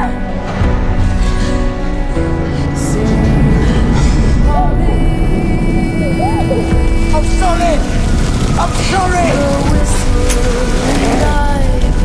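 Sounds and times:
deep rumble: 0:00.0 - 0:12.0
sustained held note: 0:02.5 - 0:08.8.

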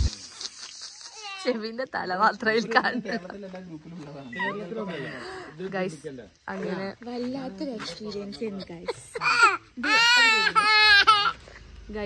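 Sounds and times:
people talking: 0:01.1 - 0:05.4.

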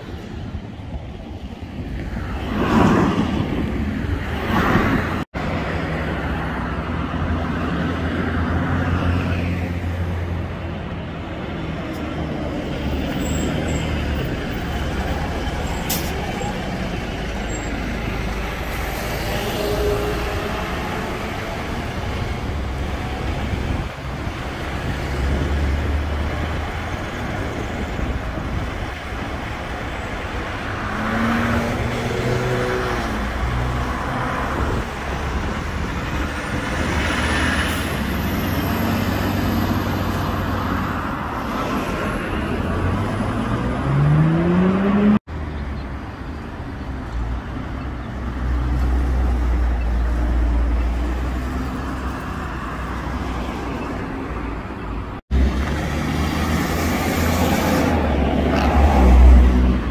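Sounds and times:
cars passing: 0:00.0 - 0:59.9.

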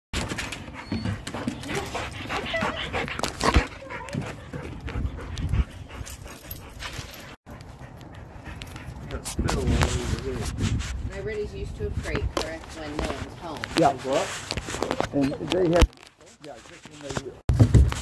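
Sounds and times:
dogs vocalizing: 0:00.6 - 0:09.1
scuffling and handling noise: 0:08.8 - 0:18.0.

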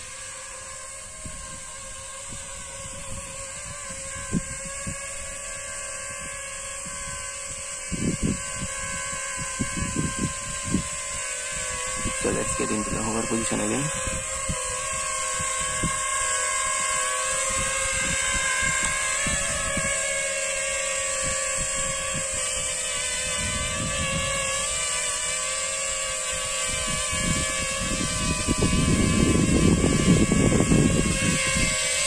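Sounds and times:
drone motors whining: 0:00.0 - 0:32.0
low buffeting rumble: 0:00.6 - 0:20.2.

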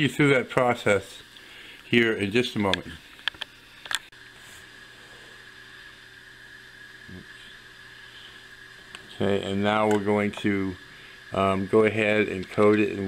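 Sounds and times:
faint room hum: 0:00.0 - 0:13.0
thin constant tone: 0:00.0 - 0:13.0.

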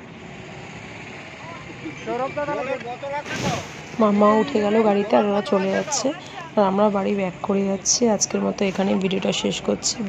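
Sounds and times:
road traffic noise: 0:00.0 - 0:10.0
faint voices: 0:01.1 - 0:10.0.

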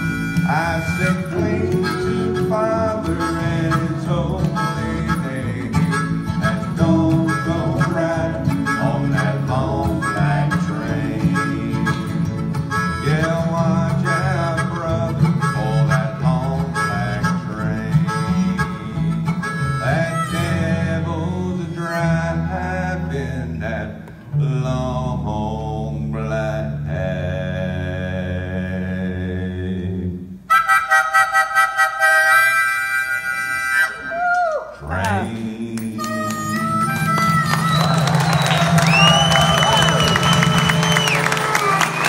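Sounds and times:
harmonica lead: 0:00.0 - 0:23.4, 0:30.5 - 0:34.4, 0:35.0 - 0:42.0
strummed acoustic guitars: 0:00.0 - 0:25.4
upright bass: 0:00.0 - 0:30.4.

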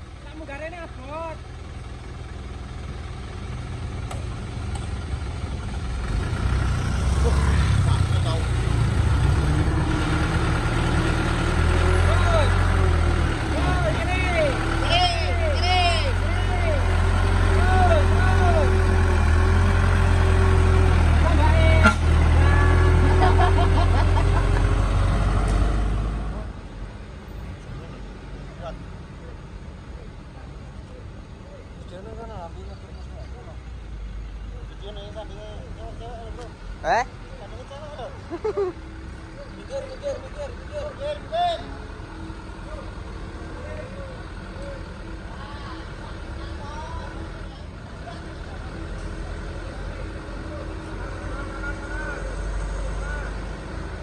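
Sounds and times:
bus diesel engine droning: 0:00.0 - 0:54.0.

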